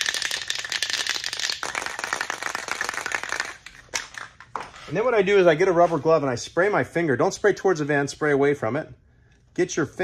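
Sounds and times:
spray can rattling when shaken: 0:00.0 - 0:04.6.

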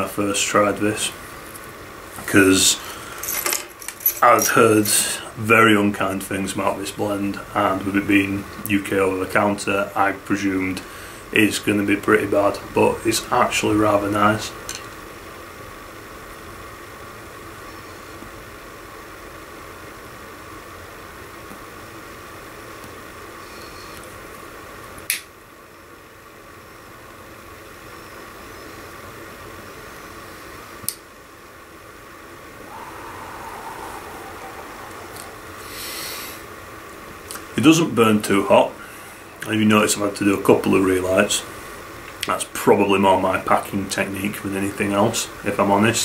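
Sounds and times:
steady low hiss: 0:00.0 - 0:46.0.

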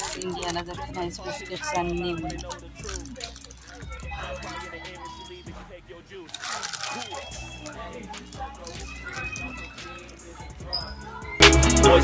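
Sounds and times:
faint music: 0:00.0 - 0:12.0
quiet voices talking: 0:00.0 - 0:12.0.

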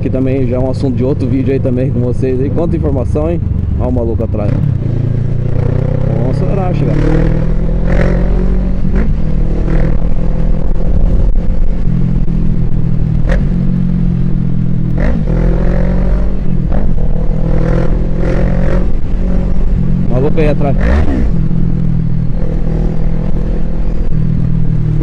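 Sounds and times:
motorcycle engine running: 0:00.0 - 0:25.0
wind on microphone: 0:04.4 - 0:13.6.

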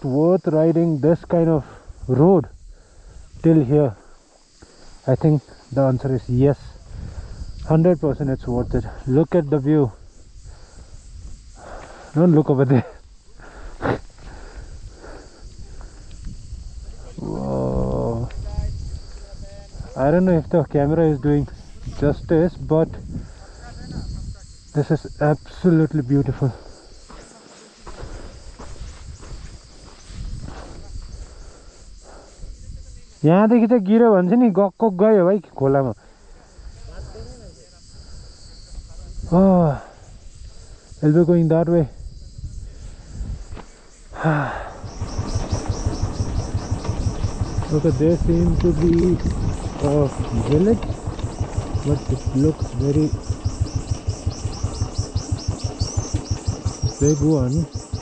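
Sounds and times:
insects chirping: 0:00.0 - 0:58.0
wind rumble on microphone: 0:05.8 - 0:12.1, 0:12.8 - 0:26.8, 0:27.9 - 0:33.2, 0:36.0 - 0:58.0
motorcycle engine thumping: 0:27.8 - 0:31.3, 0:44.4 - 0:58.0.

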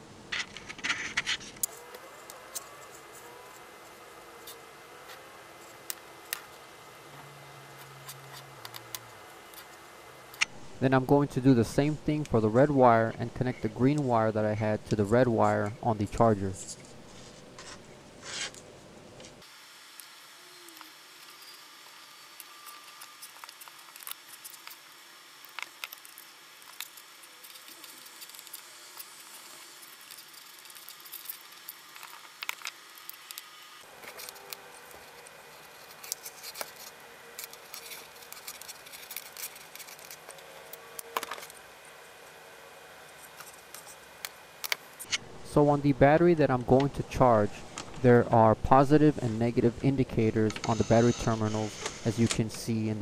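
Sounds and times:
steady hiss: 0:19.1 - 0:53.0
hands twisting copper wire: 0:22.4 - 0:41.6.

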